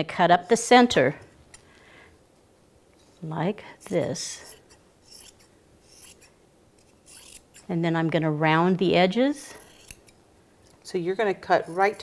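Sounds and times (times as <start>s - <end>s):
scissors cutting fabric: 3.8s - 7.7s, 9.6s - 10.2s.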